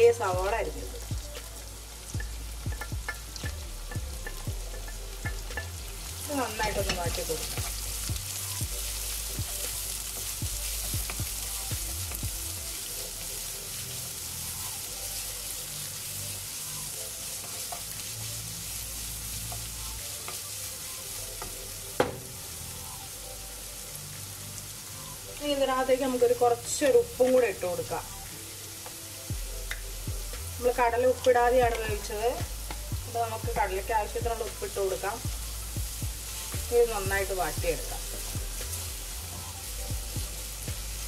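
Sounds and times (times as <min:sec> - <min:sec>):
onions sizzling in oil: 0:00.0 - 0:41.0.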